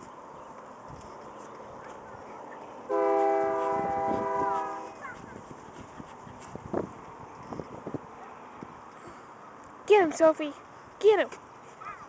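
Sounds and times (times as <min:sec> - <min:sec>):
train air horn: 0:02.9 - 0:05.0.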